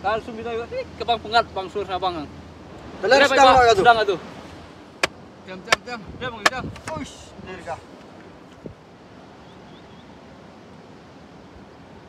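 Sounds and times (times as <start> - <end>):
wood knocks: 6.4 - 7.1.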